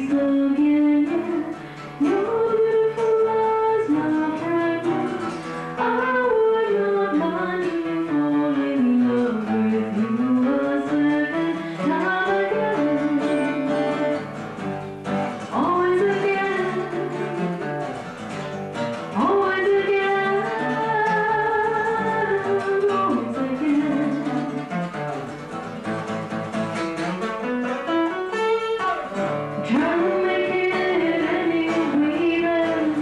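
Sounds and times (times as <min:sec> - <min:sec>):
woman singing: 0:00.0 - 0:25.3, 0:27.5 - 0:33.0
acoustic guitar: 0:00.0 - 0:33.0.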